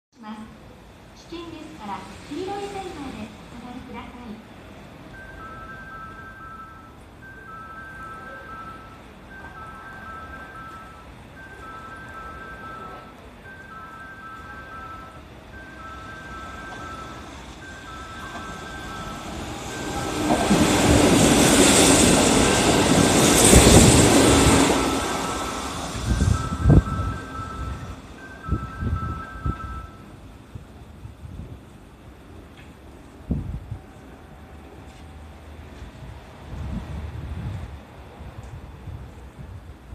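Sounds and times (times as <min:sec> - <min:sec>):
electric train passing at speed: 0:00.4 - 0:39.9
two-tone warning chime: 0:05.1 - 0:30.2.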